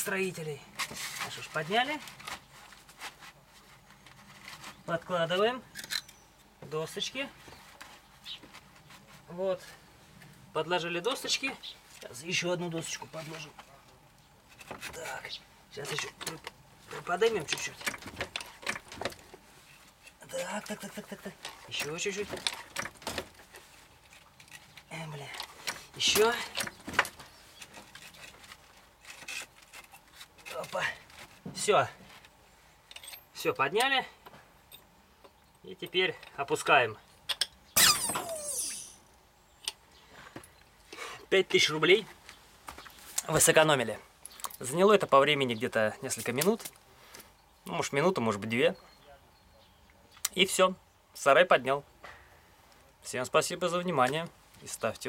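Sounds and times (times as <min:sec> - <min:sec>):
hand scraping against wood: 0:00.0 - 0:05.5.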